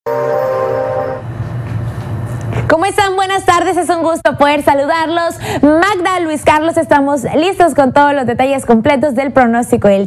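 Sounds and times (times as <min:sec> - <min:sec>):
horn-like musical chord: 0:00.1 - 0:01.4
low hum: 0:00.1 - 0:02.7.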